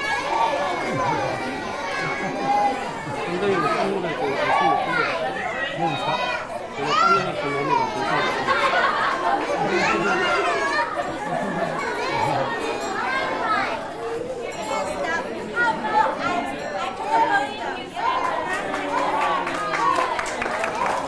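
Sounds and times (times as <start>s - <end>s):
children chattering and calling out: 0.0s - 21.0s.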